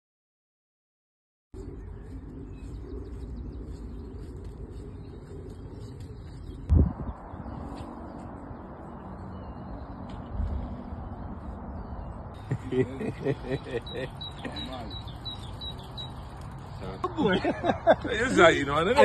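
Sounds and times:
steady low rumble: 1.6s - 18.1s
small birds chirping: 1.6s - 19.0s.

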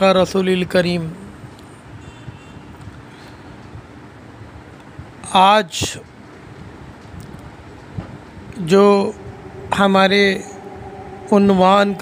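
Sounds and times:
low room hum: 7.2s - 12.0s.

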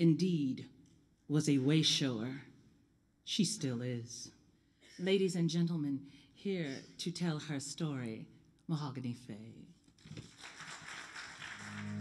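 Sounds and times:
scattered audience applause: 10.0s - 12.0s
guitar accompaniment: 11.7s - 12.0s.

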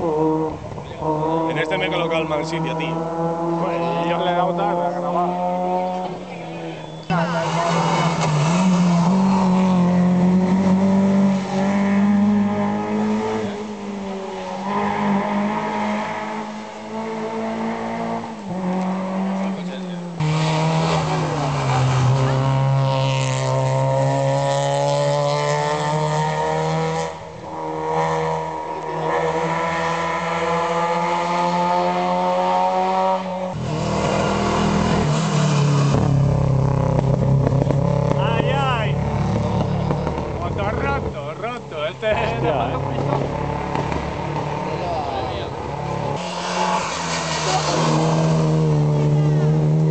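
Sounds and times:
rally car engine revving: 0.0s - 49.9s.

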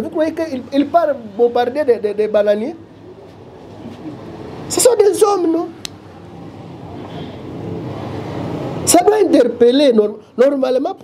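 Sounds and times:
road vehicle rumbling by: 0.6s - 10.4s.

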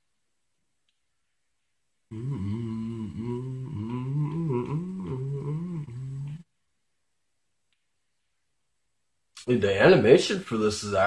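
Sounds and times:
man humming: 2.1s - 6.5s.

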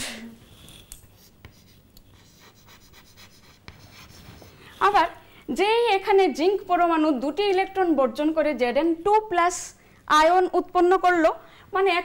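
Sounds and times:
chalk scratching on blackboard: 0.4s - 5.2s
chalk tapping on blackboard: 1.1s - 5.0s.

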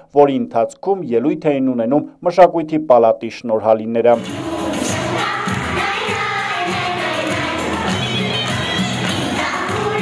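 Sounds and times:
song with singing voices: 4.1s - 10.0s.

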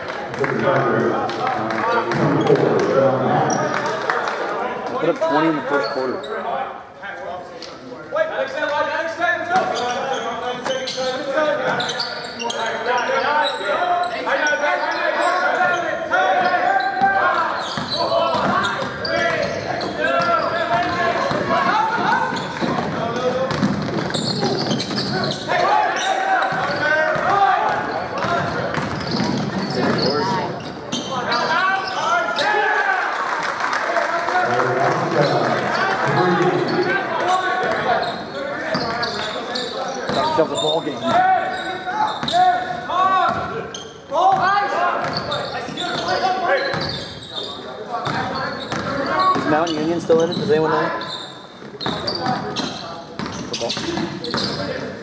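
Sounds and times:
basketball bouncing on wooden court: 17.7s - 25.1s, 26.5s - 31.0s, 42.2s - 43.5s, 46.7s - 47.0s, 48.0s - 49.5s, 51.8s - 54.6s.

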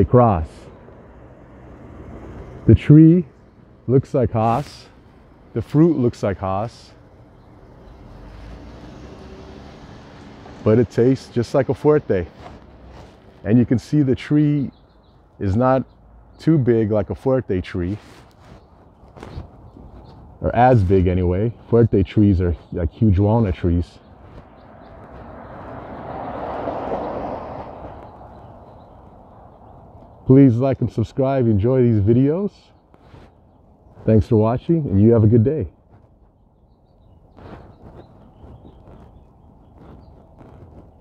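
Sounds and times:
distant engine rumble: 0.0s - 41.0s
vehicle passing: 0.1s - 36.6s, 37.2s - 41.0s.

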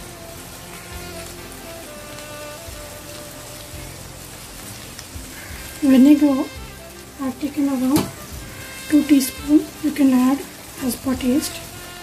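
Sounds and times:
faint music: 0.0s - 12.0s
food sizzling in a frying pan: 0.0s - 12.0s.

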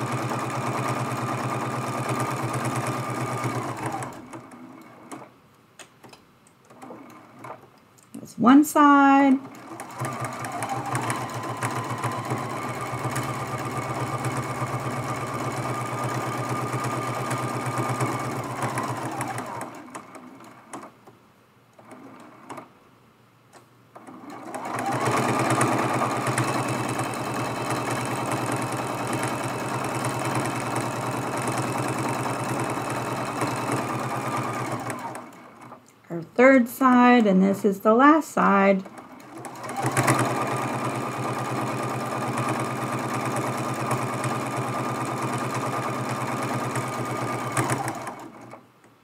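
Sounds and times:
sewing machine running: 0.0s - 5.3s, 6.7s - 7.6s, 9.3s - 20.9s, 21.8s - 22.7s, 24.0s - 35.8s, 38.8s - 48.6s.

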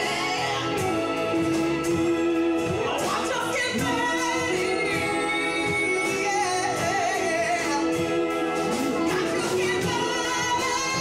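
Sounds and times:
live band playing: 0.0s - 11.0s
woman singing: 0.0s - 11.0s.

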